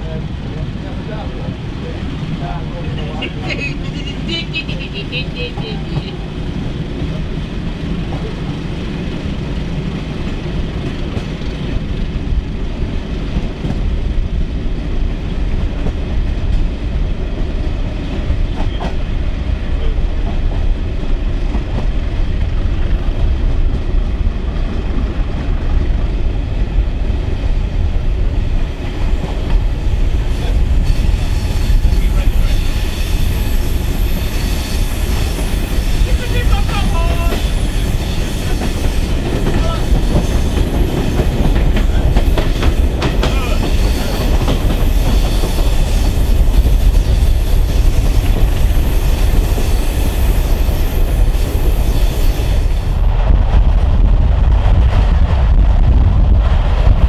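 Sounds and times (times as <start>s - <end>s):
train rumble: 0.0s - 57.0s
wheels clicking over rail joints: 35.2s - 49.7s.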